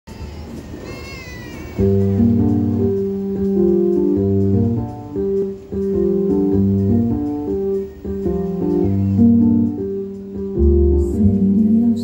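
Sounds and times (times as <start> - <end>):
high call falling in pitch: 0.1 - 2.9
open-air background murmur: 0.1 - 12.0
jazz band chord: 1.6 - 12.0.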